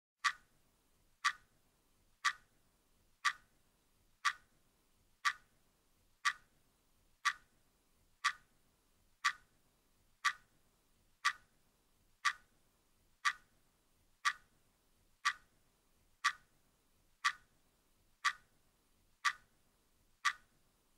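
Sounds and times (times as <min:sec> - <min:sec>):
clock ticking: 0:00.2 - 0:00.6, 0:01.2 - 0:01.6, 0:02.2 - 0:02.6, 0:03.2 - 0:03.6, 0:04.2 - 0:04.6, 0:05.2 - 0:05.6, 0:06.2 - 0:06.6, 0:07.2 - 0:07.6, 0:08.2 - 0:08.6, 0:09.2 - 0:09.6, 0:10.2 - 0:10.6, 0:11.2 - 0:11.6, 0:12.2 - 0:12.6, 0:13.2 - 0:14.6, 0:15.2 - 0:15.6, 0:16.2 - 0:16.6, 0:17.2 - 0:17.6, 0:18.2 - 0:18.6, 0:19.2 - 0:19.6, 0:20.2 - 0:20.6.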